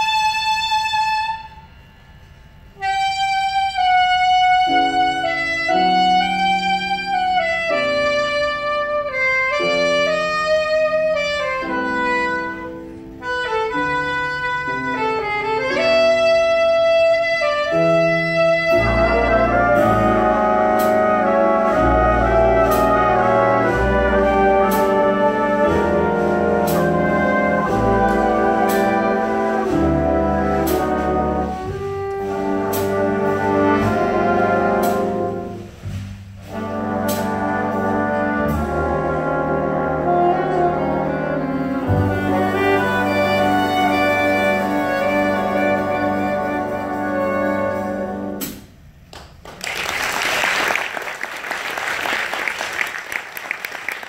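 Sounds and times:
saxophone solo: 0.0s - 1.7s, 2.8s - 22.6s, 31.2s - 35.8s
big band brass and drums: 2.8s - 49.1s.

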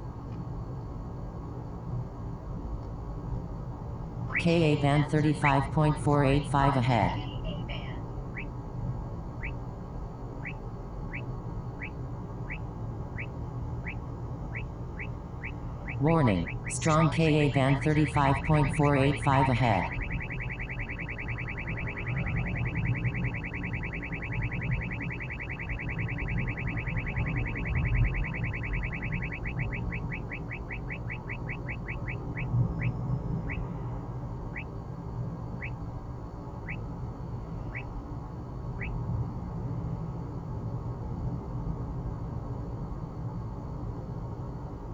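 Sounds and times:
car cabin road and engine noise: 0.0s - 41.6s
radar detector chirping beeps: 10.4s - 12.6s, 13.2s - 33.7s.

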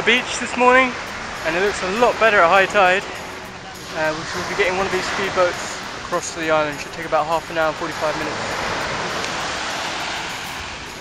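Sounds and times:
waves washing up a sandy beach: 0.0s - 11.0s.

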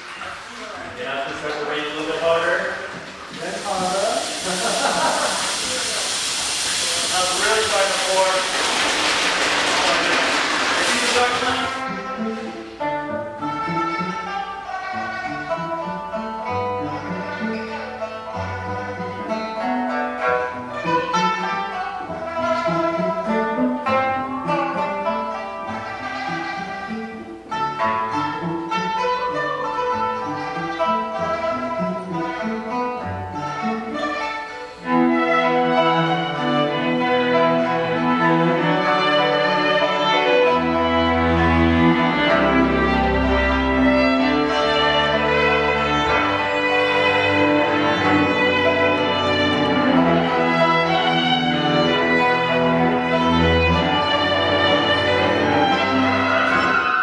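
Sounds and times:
chamber ensemble bowed strings: 9.7s - 57.0s.

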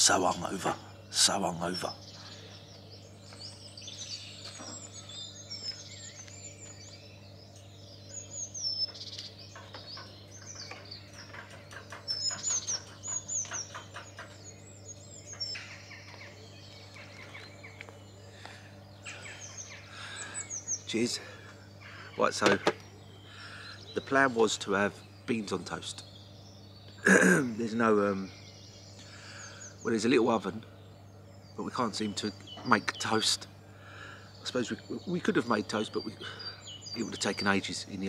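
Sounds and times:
small songbirds chirping: 0.0s - 38.0s
steady low hum: 0.0s - 38.0s.

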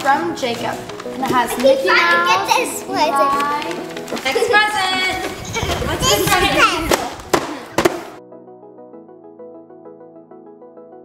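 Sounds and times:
wrapping paper tearing: 0.0s - 5.9s
soft keyboard music: 0.0s - 6.9s, 8.1s - 11.0s.

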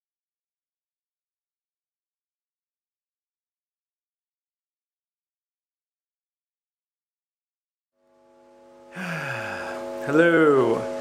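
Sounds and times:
drone of held tones: 8.0s - 11.0s
person sighing: 8.9s - 10.0s.

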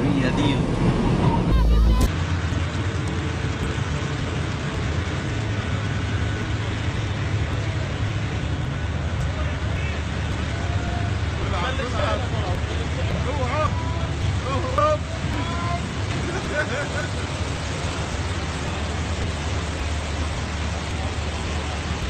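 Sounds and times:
people shouting: 1.3s - 2.1s
water gushing from borehole: 11.2s - 22.0s.

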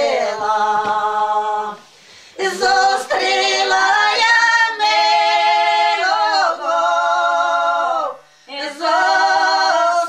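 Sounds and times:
women singing a cappella: 0.0s - 10.0s
singer breathing: 1.8s - 2.4s, 8.2s - 8.5s.

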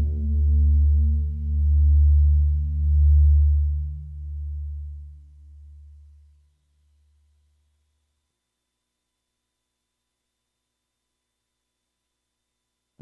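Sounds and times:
deep synthesizer bass note pulsing: 0.0s - 5.3s.

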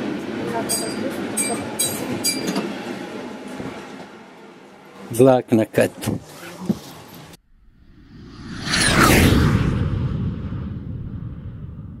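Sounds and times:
train carriage interior noise: 0.0s - 5.1s
whoosh with falling pitch sweeps: 7.5s - 12.0s.

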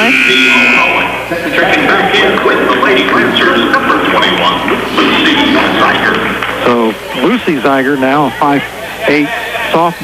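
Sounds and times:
scoreboard horn: 0.0s - 1.2s
spectators' voices: 0.0s - 10.0s.

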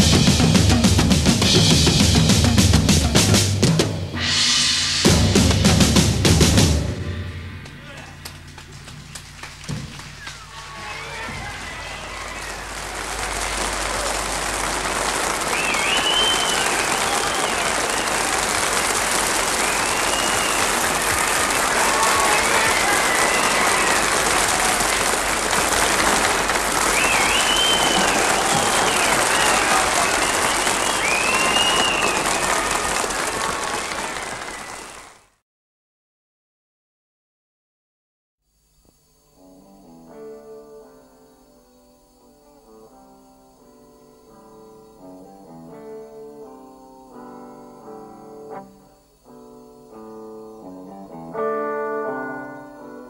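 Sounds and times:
high calls from audience: 7.7s - 35.2s
audience clapping: 8.0s - 35.4s.

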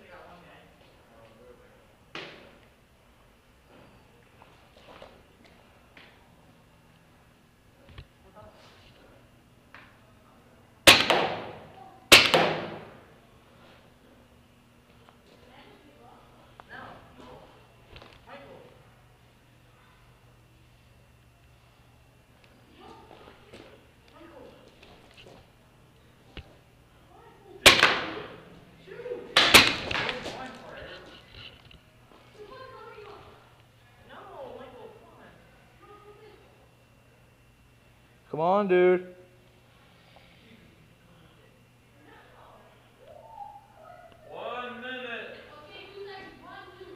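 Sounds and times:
paintball marker shots: 10.9s - 12.9s, 27.7s - 28.2s, 29.4s - 30.2s
faint distant shouting: 42.6s - 44.8s.

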